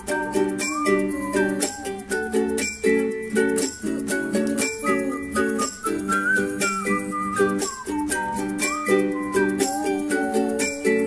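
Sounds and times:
high gliding lead melody: 0.0 - 11.0
ukulele strumming chords: 0.0 - 11.0.

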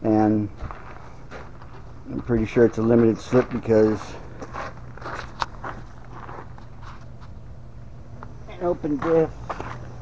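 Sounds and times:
footsteps on gravel: 0.3 - 7.4, 8.2 - 10.0.

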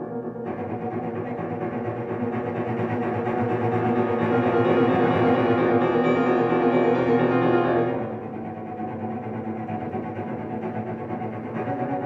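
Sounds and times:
piano playing softly: 0.0 - 8.7.

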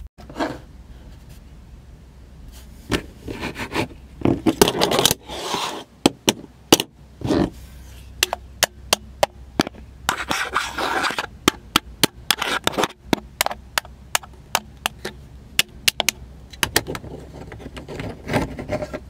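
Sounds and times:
rubbing on camera body: 10.1 - 11.3.

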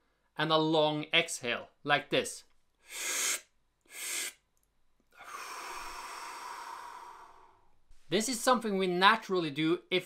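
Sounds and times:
man breathing: 2.8 - 4.4, 5.1 - 8.1.

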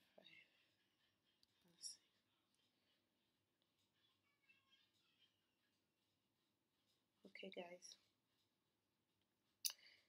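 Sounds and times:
woman whispering: 0.0 - 0.7, 1.5 - 2.2, 7.2 - 8.1.

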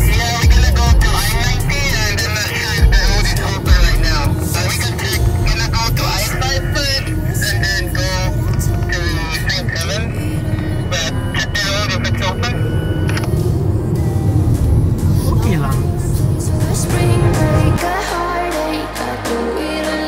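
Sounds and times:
low road rumble in car cabin: 0.0 - 17.8
man talking into two-way radio: 10.9 - 12.6, 15.2 - 16.0.

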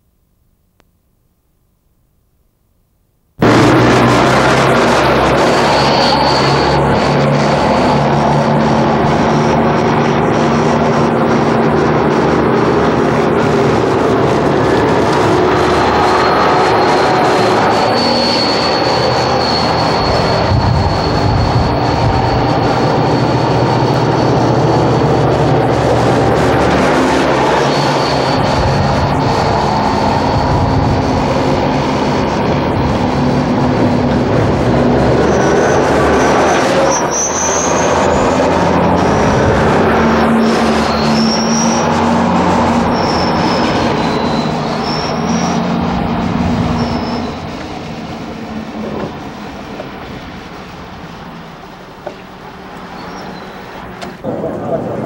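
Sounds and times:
armoured vehicle engine: 3.4 - 55.0
short high-pitched squeaks: 4.9 - 8.0, 14.7 - 31.4, 35.2 - 39.3, 40.2 - 45.8, 46.4 - 47.8, 52.1 - 54.1.

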